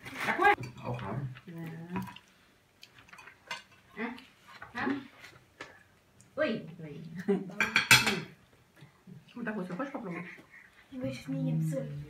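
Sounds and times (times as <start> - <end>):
cutlery and dishes clinking: 3.0 - 3.9, 7.6 - 8.4.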